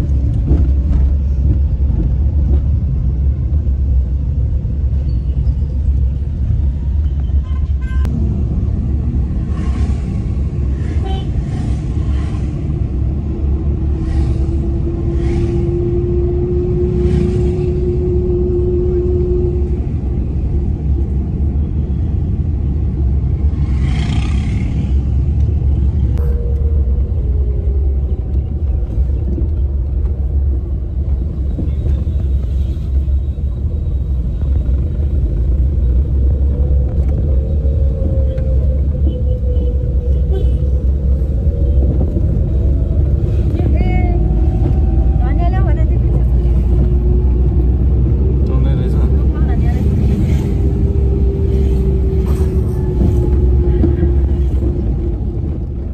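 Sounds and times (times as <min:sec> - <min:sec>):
car driving rumble: 0:00.0 - 0:55.9.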